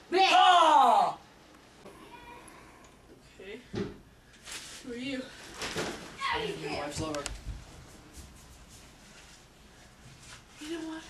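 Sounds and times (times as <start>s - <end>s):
boy crying out: 0.1s - 1.2s.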